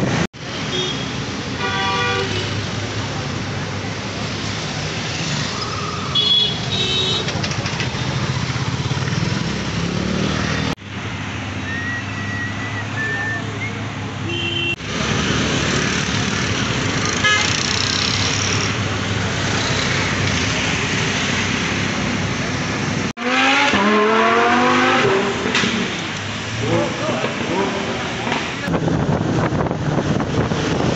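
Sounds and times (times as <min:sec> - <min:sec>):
busy road traffic: 0:00.0 - 0:30.9
engine revving: 0:23.1 - 0:26.0.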